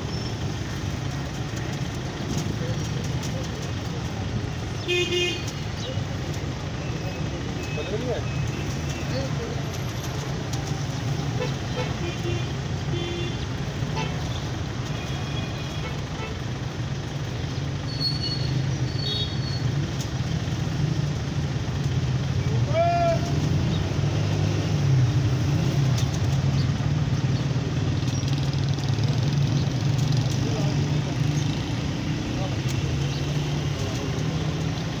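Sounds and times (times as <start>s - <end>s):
voices: 0.0s - 20.9s, 21.6s - 35.0s
engine hum: 0.0s - 35.0s.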